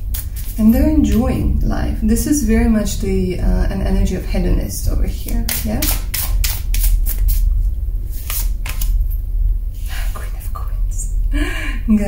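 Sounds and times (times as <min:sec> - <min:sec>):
steady low hum: 0:00.0 - 0:12.0
cards being shuffled: 0:00.1 - 0:00.6, 0:05.5 - 0:07.5, 0:08.1 - 0:09.0.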